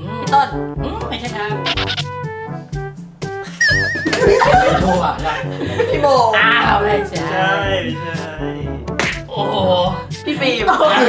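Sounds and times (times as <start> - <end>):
light playful background music: 0.0 - 11.0
warbling comic sound effect: 1.6 - 2.0, 3.5 - 5.0.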